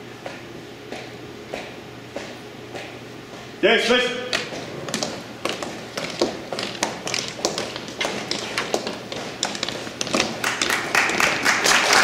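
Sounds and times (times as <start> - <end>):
marching boots on hard floor: 0.2 - 3.5, 4.2 - 11.4
applause: 10.4 - 12.0.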